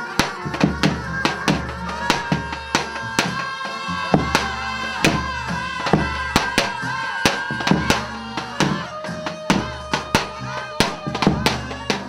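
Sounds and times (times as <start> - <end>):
bass drum beats: 0.0 - 12.0
wavering wind instrument melody: 0.0 - 12.0.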